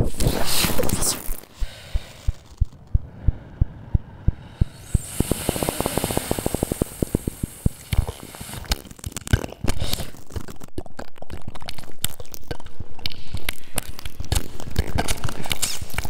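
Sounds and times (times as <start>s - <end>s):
rising high hiss: 4.6s - 8.7s.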